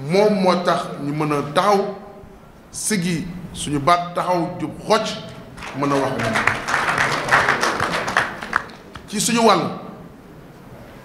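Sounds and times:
audience clapping: 5.3s - 9.3s.

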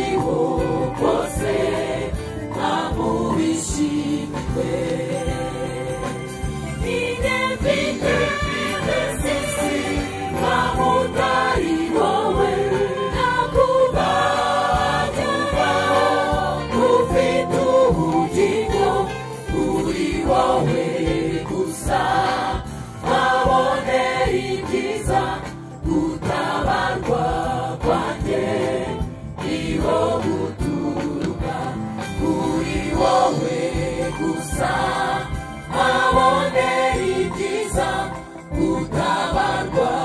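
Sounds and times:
instrumental backing: 0.0s - 40.0s
mixed choir singing gospel: 0.0s - 40.0s.

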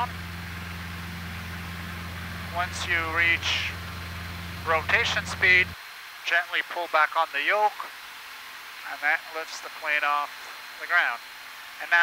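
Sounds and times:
small aircraft piston engine: 0.0s - 6.8s.

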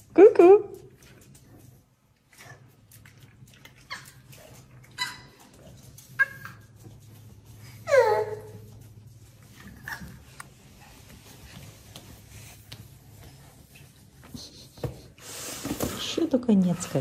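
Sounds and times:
dog whining: 3.8s - 6.7s, 7.8s - 8.7s.

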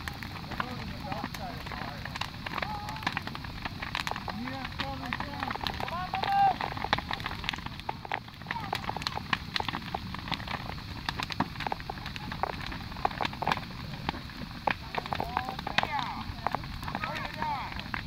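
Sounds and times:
bonfire crackling: 0.0s - 18.0s
sharp pops from fire: 0.0s - 18.0s.

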